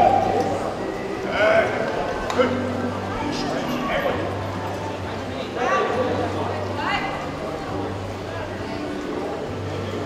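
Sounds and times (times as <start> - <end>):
people shouting and yipping: 0.0 - 0.9.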